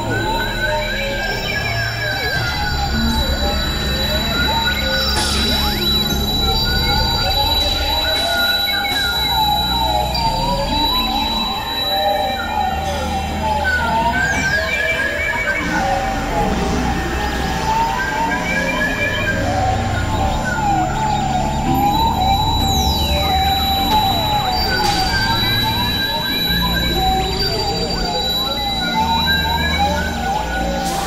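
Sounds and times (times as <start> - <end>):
experimental electronic music: 0.0 - 31.0
low drones: 0.0 - 31.0
siren-like wavering lines: 0.0 - 31.0
steady high tone: 0.0 - 31.0.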